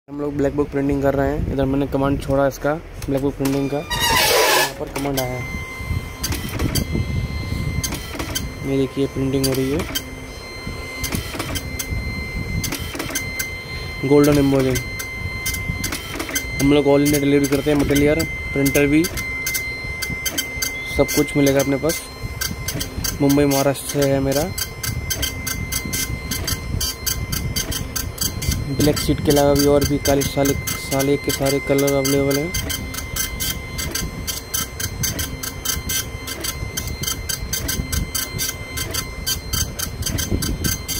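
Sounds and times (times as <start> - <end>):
dot-matrix printer rattling: 6.2 - 7.0, 7.8 - 10.2, 10.8 - 40.9.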